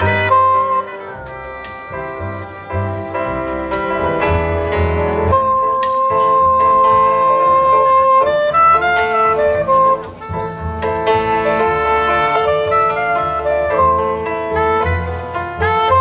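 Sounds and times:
double bass: 0.0 - 16.0
soprano saxophone jazz solo: 0.0 - 16.0.

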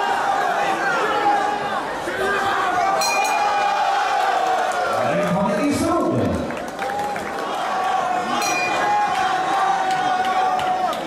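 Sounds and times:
crowd shouting: 0.0 - 5.0, 6.8 - 11.0
ringside bell ringing: 3.0 - 3.5, 8.4 - 8.8.

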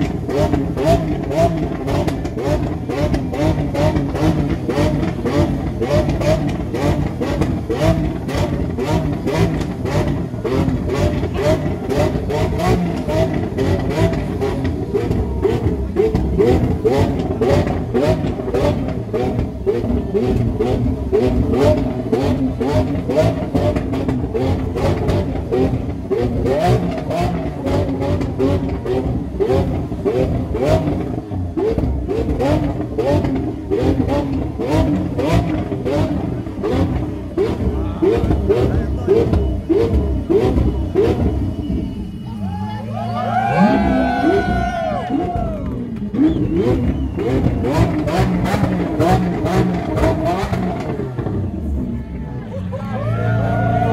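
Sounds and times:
car engine revving: 0.0 - 53.9
crowd chattering: 0.0 - 53.9.

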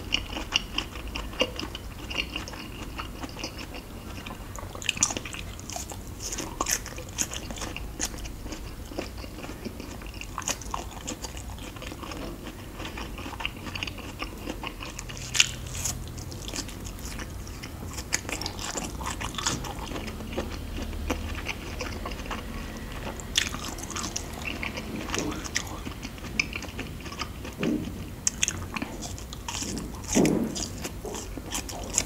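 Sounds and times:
biting and chewing sweets: 0.0 - 32.0.

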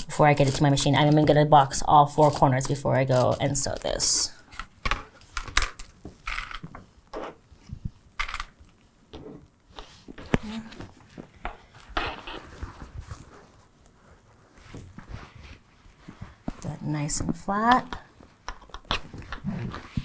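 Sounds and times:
soft fabric rustles: 9.6 - 18.4.

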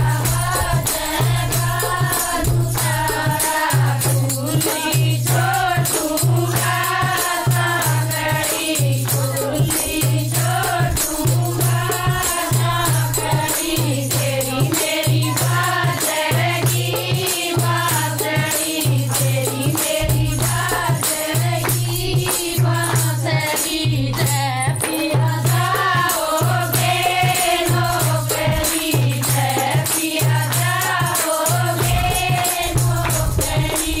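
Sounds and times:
hand clapping: 0.0 - 34.0
rattling percussion: 0.0 - 34.0
women singing folk song: 0.0 - 34.0.

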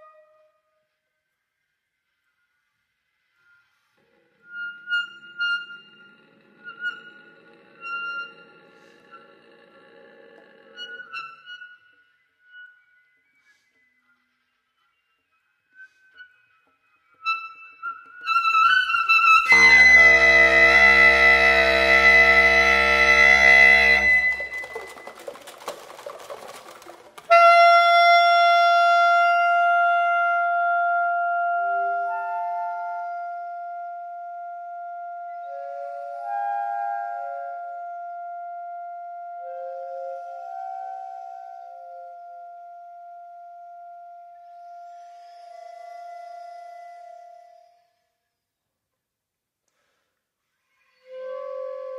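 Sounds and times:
breathy wind instrument sounds: 3.4 - 12.0, 15.7 - 17.3, 18.9 - 48.6, 49.7 - 51.9
loud held woodwind note: 19.4 - 24.8
bass clarinet low tone: 19.4 - 25.0, 27.3 - 47.8, 51.0 - 51.9
flute high note: 19.4 - 25.0, 27.3 - 48.2, 51.0 - 51.9.

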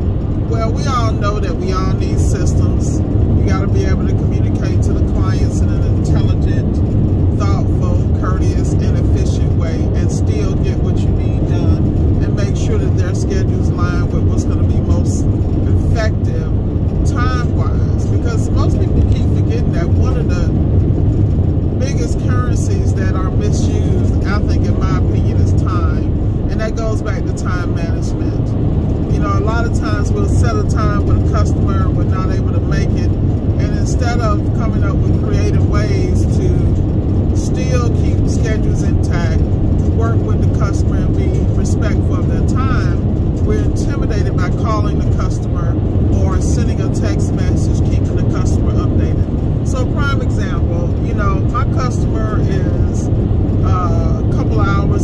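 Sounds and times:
car tyre and engine rumble: 0.0 - 55.0
person talking: 0.4 - 20.7, 21.8 - 55.0.

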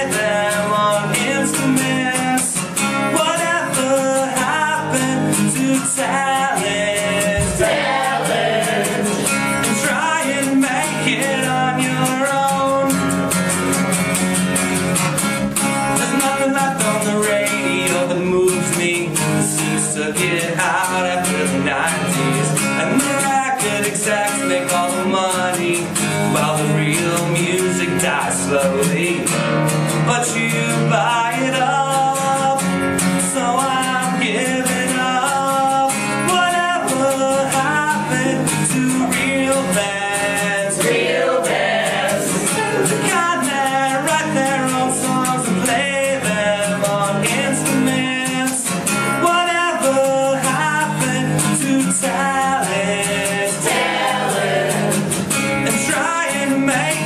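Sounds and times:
man singing: 0.0 - 13.6, 15.6 - 57.0
acoustic guitar strumming: 0.0 - 57.0.

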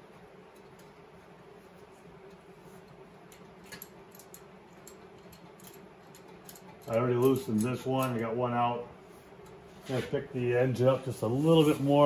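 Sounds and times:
steady low hum: 0.0 - 12.0
metallic wrench clicks: 3.7 - 8.2.

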